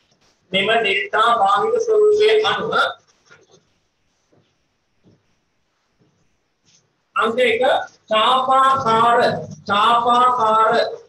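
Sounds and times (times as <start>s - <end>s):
man lecturing: 0.5s - 3.1s, 7.2s - 11.0s.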